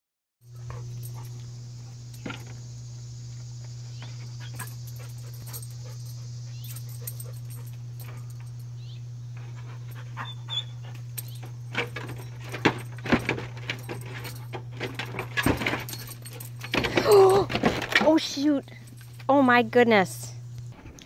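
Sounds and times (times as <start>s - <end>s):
steady low hum: 0.4s - 21.0s.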